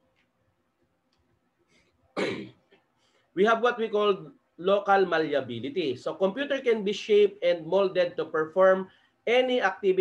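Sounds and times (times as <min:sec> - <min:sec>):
man clearing throat: 0:02.2 - 0:02.6.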